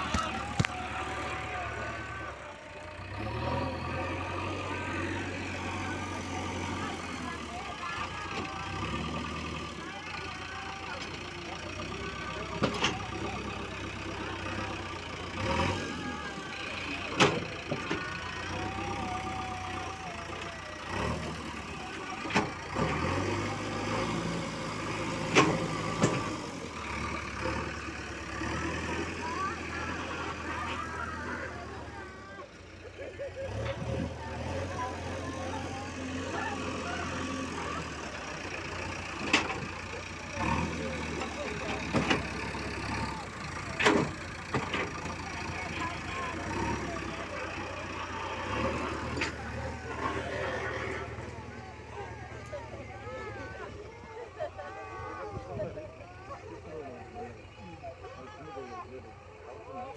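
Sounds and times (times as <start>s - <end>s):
diesel loader engine running: 0.0s - 59.9s.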